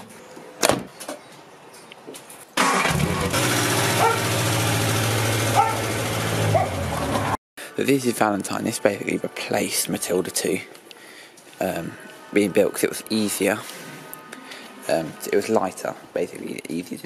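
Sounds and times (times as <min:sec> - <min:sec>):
car engine running: 0:02.9 - 0:07.4.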